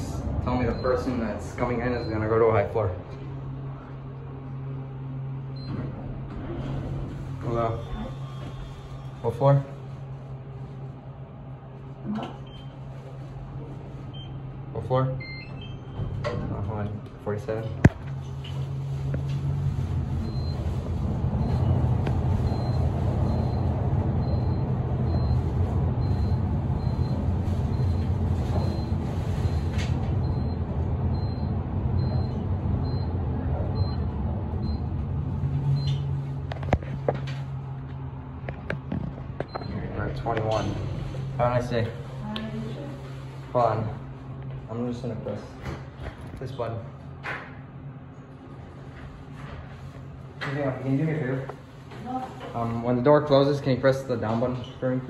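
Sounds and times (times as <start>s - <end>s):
elevator low hum: 0.0s - 55.0s
short high floor-passing beeps: 0.6s - 1.2s, 20.2s - 20.8s, 21.4s - 33.2s
elevator doors sliding open: 4.5s - 9.3s, 18.4s - 37.7s.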